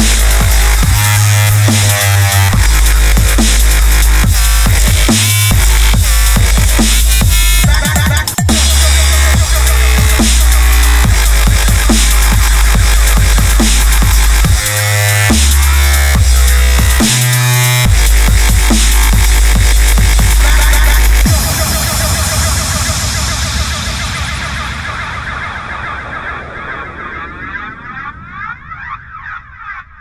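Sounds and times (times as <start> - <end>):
dubstep music with heavy bass: 0.0 - 27.5.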